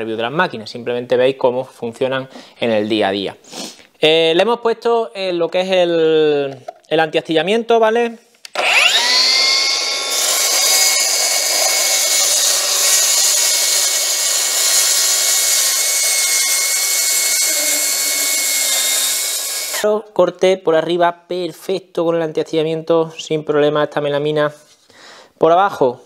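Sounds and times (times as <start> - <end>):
track saw cutting board: 8.5 - 19.8.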